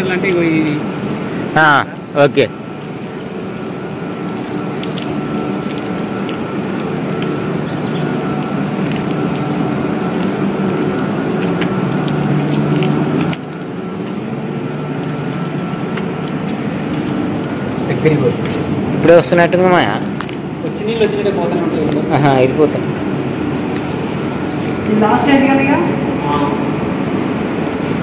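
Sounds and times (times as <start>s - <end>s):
light footstep clicks: 0.0s - 24.8s
machinery hum with held tones: 0.0s - 28.0s.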